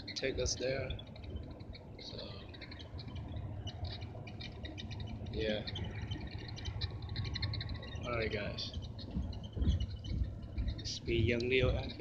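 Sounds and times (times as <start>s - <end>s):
heavy low thumps: 8.1s - 12.0s.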